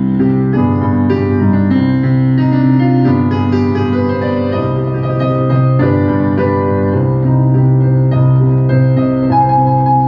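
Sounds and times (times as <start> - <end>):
piano chords over bass note: 0.0 - 10.0.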